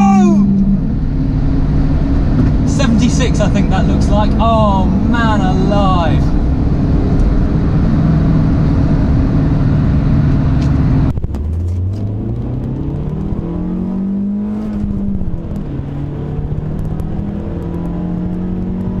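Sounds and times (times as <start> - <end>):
car engine and road noise: 0.0 - 19.0
car engine revving: 0.0 - 19.0.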